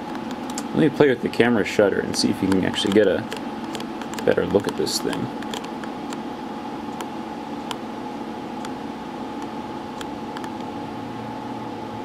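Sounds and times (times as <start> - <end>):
electrical hum and fan whir: 0.0 - 12.0.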